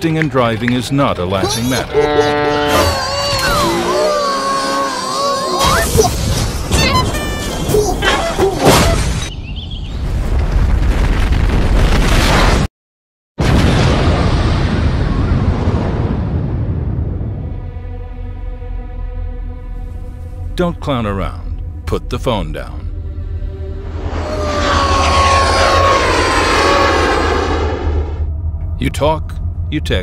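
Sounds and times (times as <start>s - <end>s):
explosion blast: 10.0s - 12.7s, 13.4s - 17.6s, 23.9s - 28.3s
steady low rumble: 19.8s - 30.0s
jet-like rushing whoosh: 23.7s - 28.3s.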